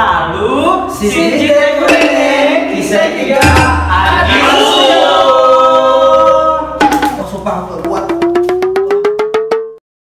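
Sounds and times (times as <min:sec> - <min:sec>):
tone rising in pitch: 0:07.9 - 0:09.8.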